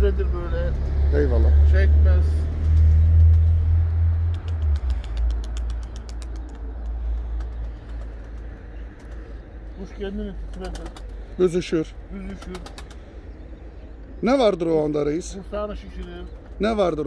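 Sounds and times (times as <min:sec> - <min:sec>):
steady low rumble: 0:01.2 - 0:16.6.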